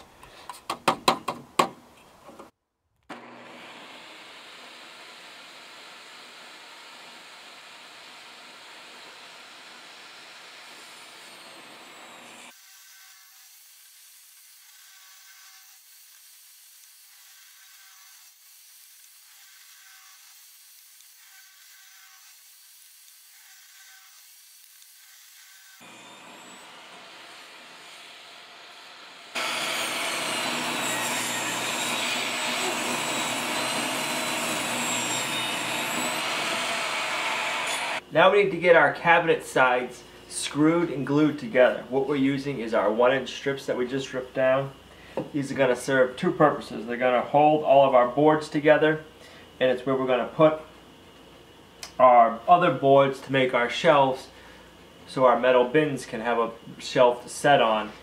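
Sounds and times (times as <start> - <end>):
table saw ripping board: 29.3 - 38.0.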